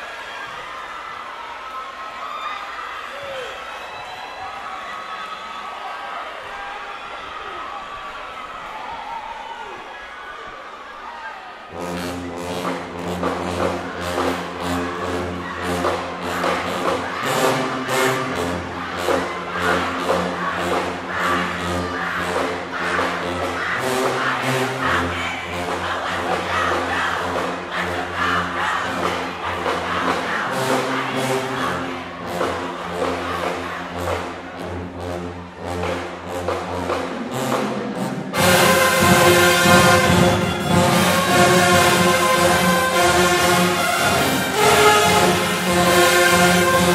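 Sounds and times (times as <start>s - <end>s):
marching band playing: 11.7s - 46.9s.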